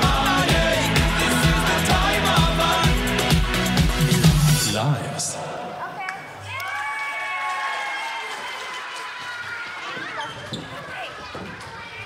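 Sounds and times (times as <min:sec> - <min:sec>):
children's voices: 0:05.4 - 0:06.9, 0:09.0 - 0:12.0.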